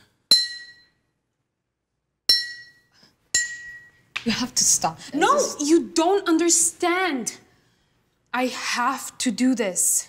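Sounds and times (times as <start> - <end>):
glass bottle struck ringing: 0.3 - 1.0, 2.3 - 4.0.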